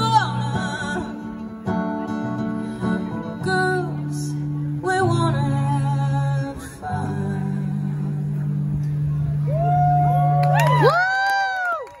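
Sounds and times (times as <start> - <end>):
audience whooping and cheering: 9.4 - 12.0.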